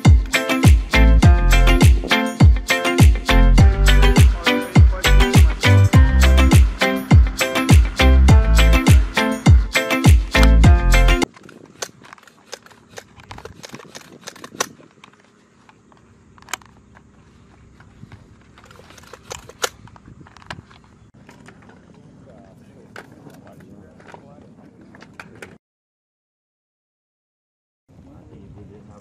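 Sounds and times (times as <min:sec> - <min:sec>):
music with heavy beat: 0:00.0 - 0:11.3
cartridges clicking into magazine: 0:11.3 - 0:15.2, 0:18.6 - 0:20.6.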